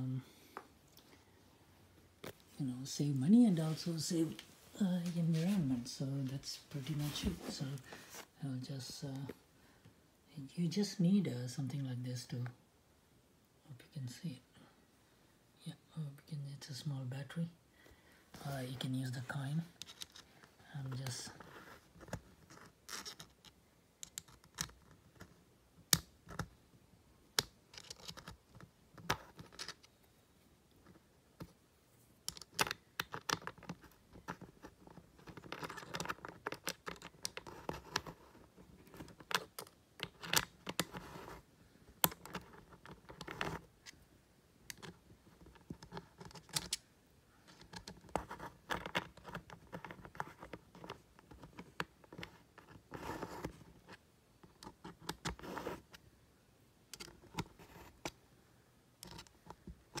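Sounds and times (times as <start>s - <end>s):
scratching and scraping: 2.2s - 9.4s, 18.4s - 25.4s, 27.7s - 29.9s, 32.3s - 44.0s, 47.4s - 56.0s.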